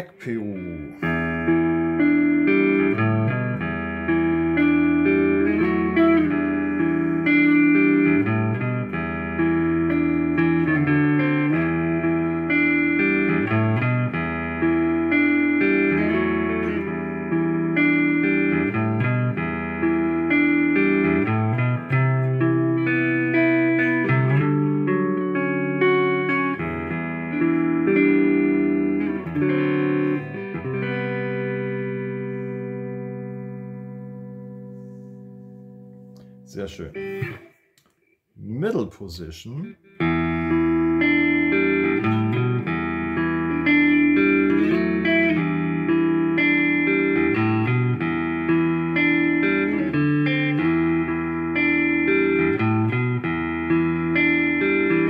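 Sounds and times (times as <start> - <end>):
electric guitar chords: 0.0 - 37.8, 39.6 - 55.0.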